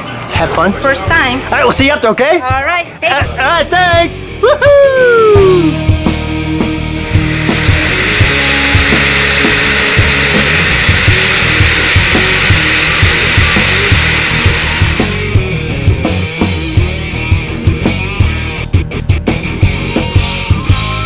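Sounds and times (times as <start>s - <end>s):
rock music with drum beat: 3.5s - 21.0s
turboprop engine rush and whine: 7.0s - 15.4s.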